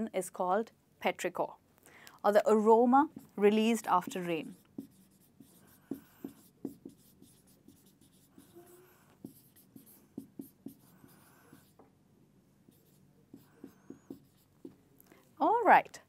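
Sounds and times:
marker pen writing on whiteboard: 0:03.0 - 0:12.0, 0:12.6 - 0:14.9.

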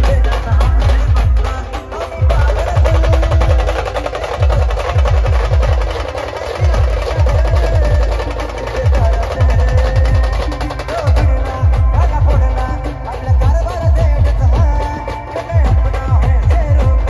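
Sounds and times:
heavy bass drum beats: 0:00.0 - 0:17.0
procession band music on loudspeakers: 0:00.0 - 0:17.0.

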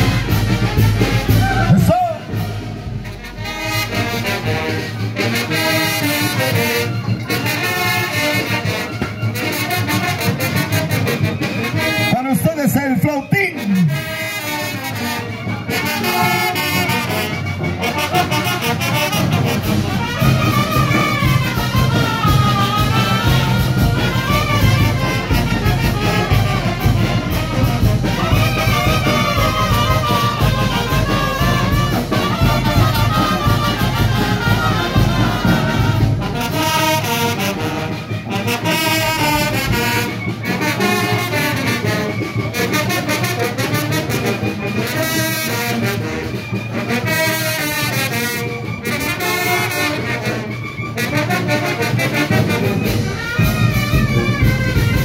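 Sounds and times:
brass band playing dance tune: 0:00.0 - 0:55.0.

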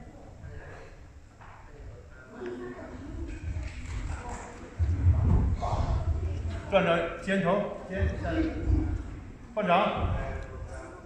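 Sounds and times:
low indistinct voices: 0:00.0 - 0:11.0
loud low thudding: 0:04.8 - 0:06.7, 0:10.0 - 0:10.7.

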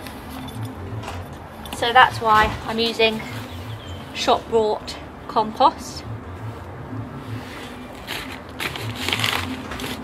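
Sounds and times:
gloved hands rustling and scraping: 0:07.3 - 0:10.0.

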